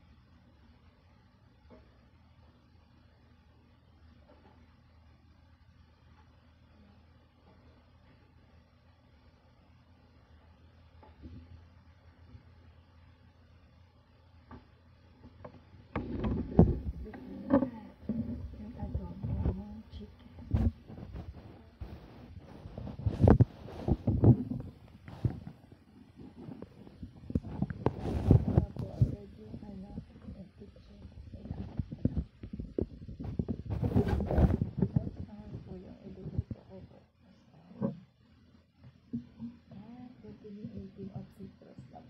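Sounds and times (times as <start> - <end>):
woman's voice: 16.8 - 20.7, 28.1 - 31.9, 33.9 - 38.0, 39.7 - 42.0.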